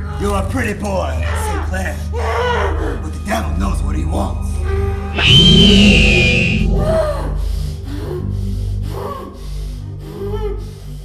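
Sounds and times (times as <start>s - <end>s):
low droning music: 0.0s - 11.0s
high shrill music stinger: 5.2s - 7.0s.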